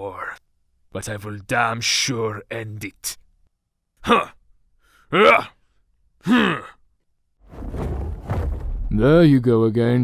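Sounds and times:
man sighing: 6.2s - 6.8s.

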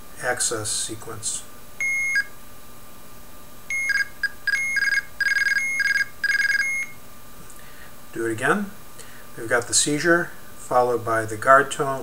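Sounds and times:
signalling tones from small speaker: 1.8s - 2.4s, 3.7s - 7.0s.

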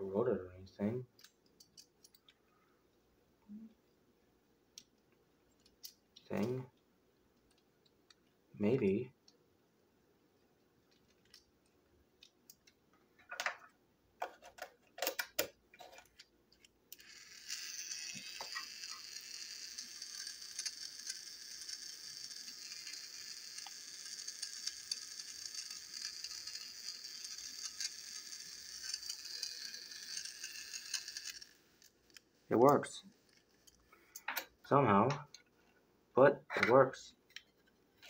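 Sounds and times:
toy electric motor whirring: 16.9s - 32.2s.

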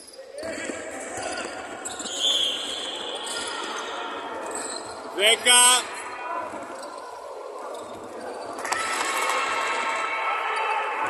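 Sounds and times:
players running on wooden court: 0.4s - 5.8s.

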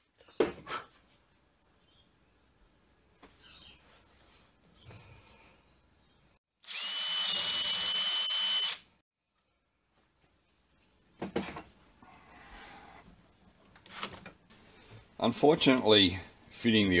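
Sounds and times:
power drill whining: 6.6s - 8.8s.

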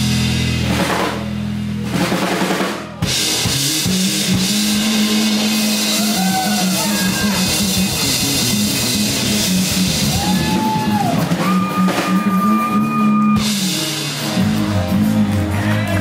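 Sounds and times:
live rock band playing: 0.0s - 16.0s
sliding lead melody: 0.0s - 16.0s.

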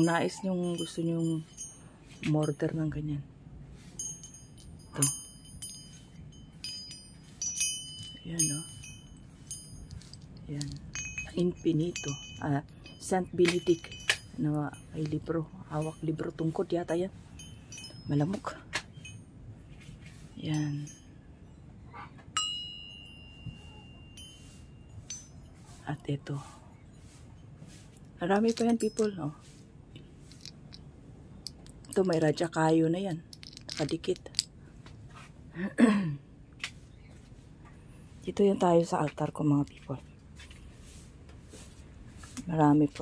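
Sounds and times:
metal medallions clinking: 3.9s - 16.5s, 27.4s - 29.4s, 30.0s - 34.6s.

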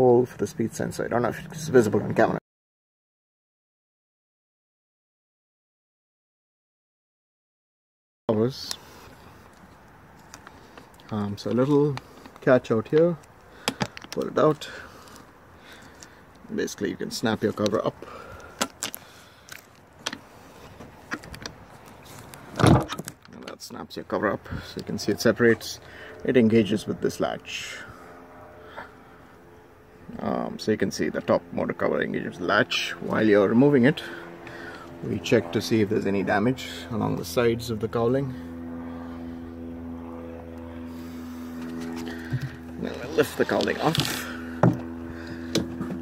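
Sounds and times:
steady machine hum: 0.0s - 2.4s, 8.3s - 22.9s, 23.5s - 46.0s.

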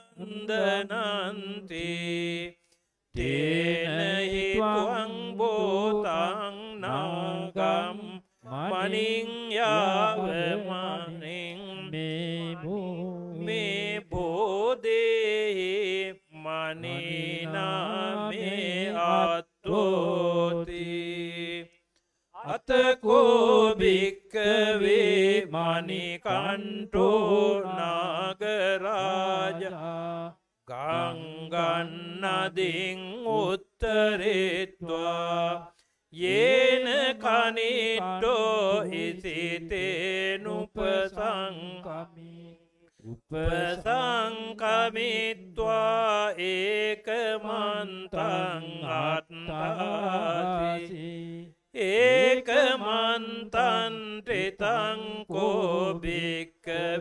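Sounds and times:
monk chanting into a microphone: 0.0s - 2.5s, 3.2s - 21.6s, 22.4s - 57.0s.

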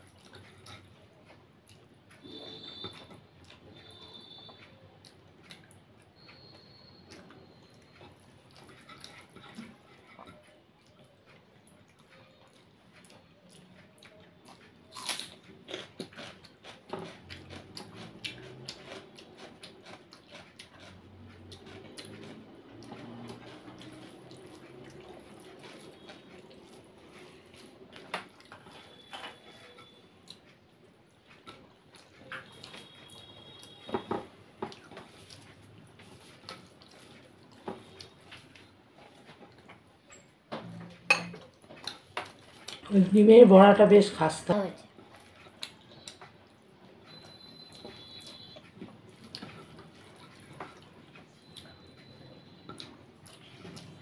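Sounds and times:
chewing: 0.0s - 43.0s, 44.7s - 54.0s.

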